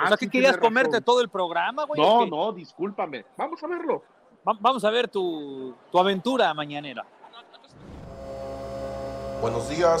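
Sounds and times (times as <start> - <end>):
coffee machine pump humming: 8.1 - 10.0.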